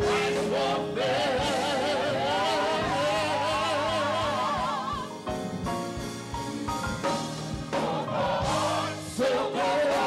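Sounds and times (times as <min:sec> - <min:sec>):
lead singers on microphones: 0:00.0 - 0:05.2, 0:07.7 - 0:10.0
gospel choir singing: 0:00.0 - 0:05.7, 0:07.0 - 0:10.0
instrumental backing: 0:00.0 - 0:10.0.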